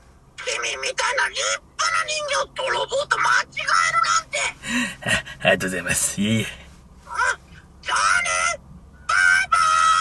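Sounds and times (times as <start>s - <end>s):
squeaky falsetto voice speaking: 7.1s - 10.0s.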